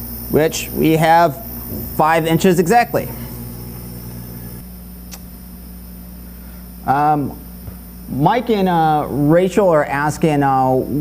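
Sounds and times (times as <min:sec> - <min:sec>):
laser engraver humming: 0:00.0 - 0:11.0.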